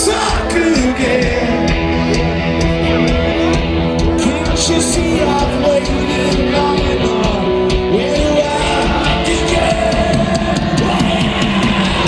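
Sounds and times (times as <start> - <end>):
electric guitar: 0.0 - 12.0
live rock band: 0.0 - 12.0.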